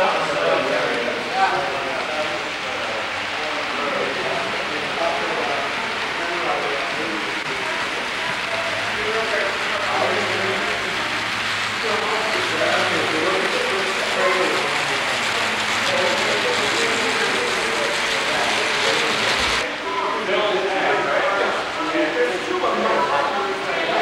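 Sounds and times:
voices chattering: 0.0s - 24.0s
model train wheels clattering: 4.4s - 19.6s.

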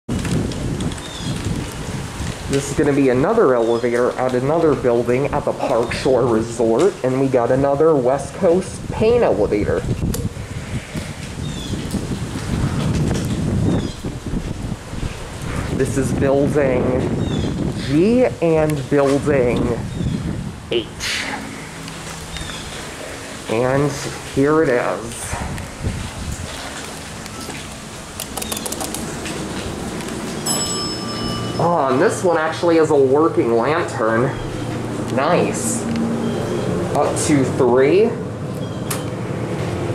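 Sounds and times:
wind rumbling on microphone: 0.1s - 31.5s
camera handling rustle: 28.2s - 29.1s
door equipment clicks and rattles: 28.2s - 29.3s.

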